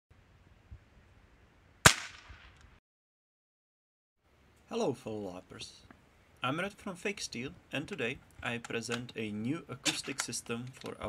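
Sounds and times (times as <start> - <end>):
firecracker bang: 1.8 - 2.6.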